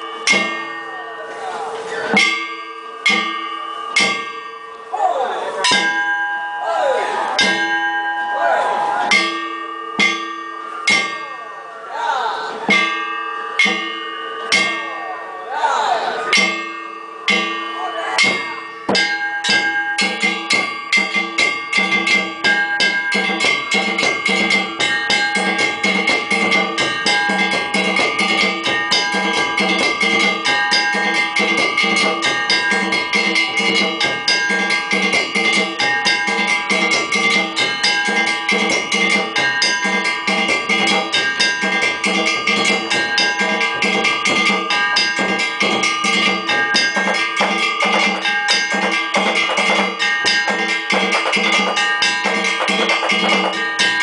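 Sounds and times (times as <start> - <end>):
metal gongs ringing: 0.0 - 11.9, 12.6 - 54.0
drums beating: 16.3 - 54.0.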